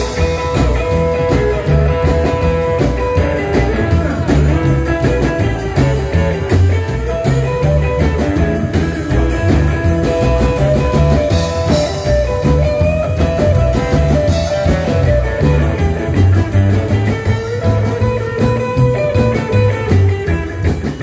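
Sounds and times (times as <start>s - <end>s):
drum kit: 0.0s - 21.0s
electric guitar: 0.0s - 21.0s
upright double bass notes: 0.0s - 21.0s.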